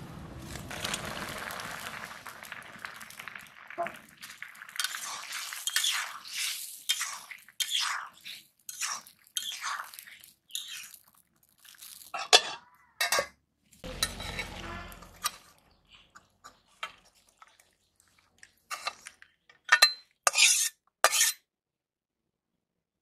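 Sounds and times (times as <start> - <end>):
metal spatula scraping pan: 4.8 - 9.7, 12.2 - 17.3, 18.7 - 21.4.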